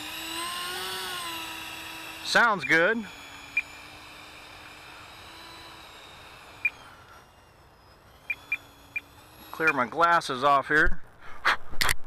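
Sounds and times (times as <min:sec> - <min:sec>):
electric fan high whine: 0:00.0 - 0:11.2.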